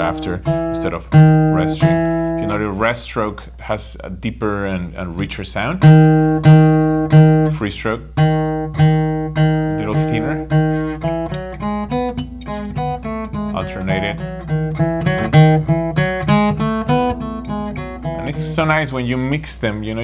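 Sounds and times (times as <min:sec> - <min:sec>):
fingerstyle acoustic guitar: 0:00.0 - 0:02.7, 0:05.8 - 0:18.7.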